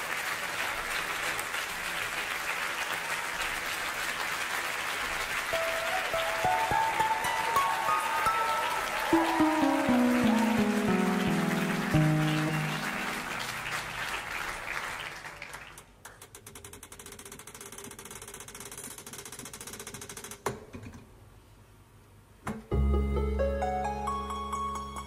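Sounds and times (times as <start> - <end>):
crowd noise: 0.0 - 15.3
ringing stage music notes: 5.5 - 14.5.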